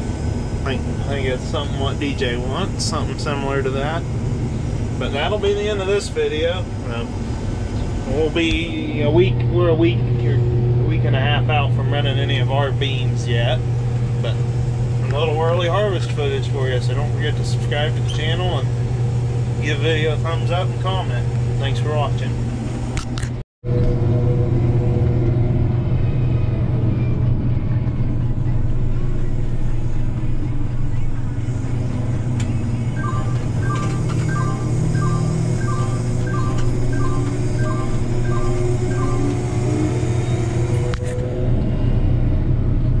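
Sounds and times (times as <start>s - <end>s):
combine engine droning: 0.0s - 43.0s
in-cab warning beeps: 31.9s - 41.2s.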